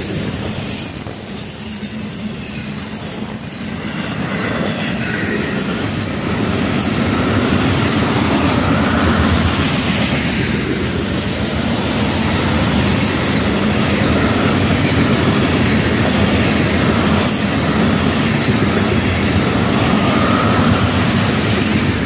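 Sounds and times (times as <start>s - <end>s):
freight train wheels rumbling: 0.0s - 22.0s
train wheels clickety-clack: 0.0s - 22.0s.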